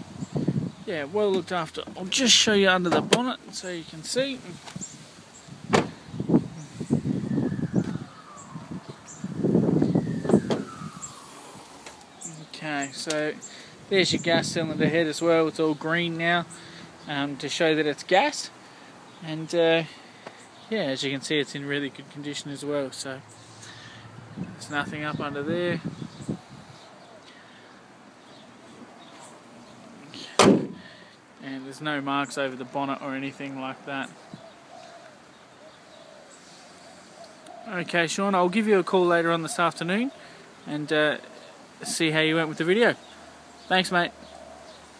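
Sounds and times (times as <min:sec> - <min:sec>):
car bonnet catch clicks: 0:05.7 - 0:06.0, 0:30.4 - 0:30.8.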